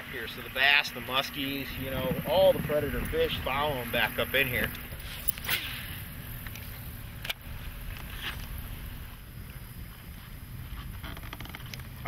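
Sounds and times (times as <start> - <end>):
water on a boat: 0.0 - 12.0
wind rumble: 0.0 - 12.0.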